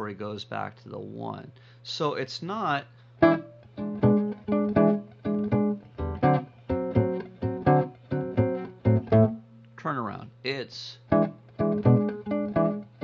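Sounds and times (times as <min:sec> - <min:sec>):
low steady hum: 0:00.0 - 0:13.0
electric guitar blues phrase: 0:03.2 - 0:09.6, 0:11.0 - 0:13.0.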